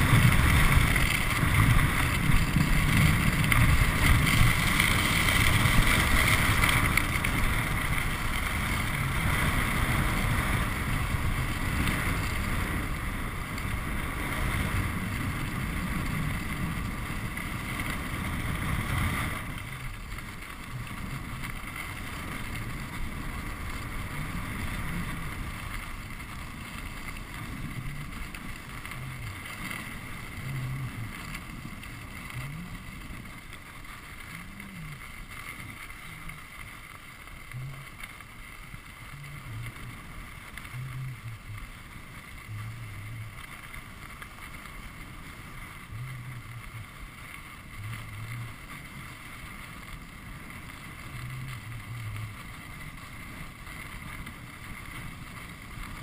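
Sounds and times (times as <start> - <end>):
rush of wind: 0.0 - 56.0
skis sliding over packed snow: 0.0 - 56.0.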